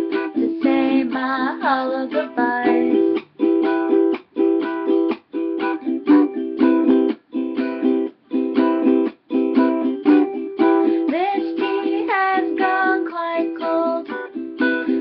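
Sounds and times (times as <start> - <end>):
ukulele strumming chords: 0.0 - 15.0.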